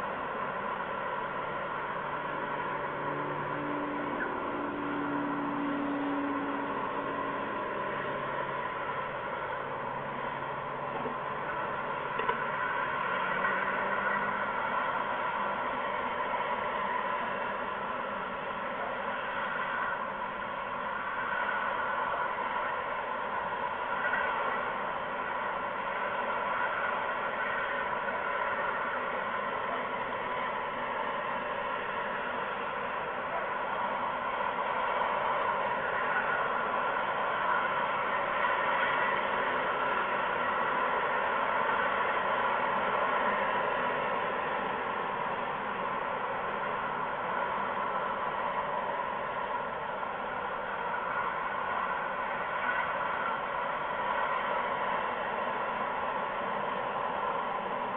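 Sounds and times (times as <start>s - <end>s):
continuous even hiss: 0.0s - 57.9s.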